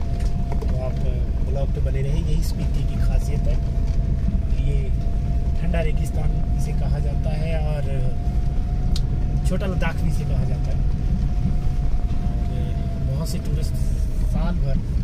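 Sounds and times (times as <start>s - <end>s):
engine and road rumble: 0.0s - 15.0s
high whine: 0.0s - 15.0s.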